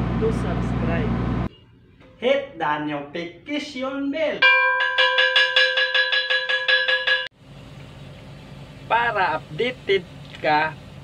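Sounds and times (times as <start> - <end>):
ship's bell struck rapidly: 4.4 - 7.3.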